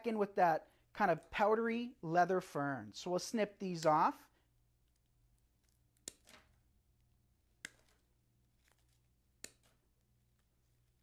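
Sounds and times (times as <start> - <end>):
wire cutters snipping: 4.9 - 6.6, 7.6 - 9.9.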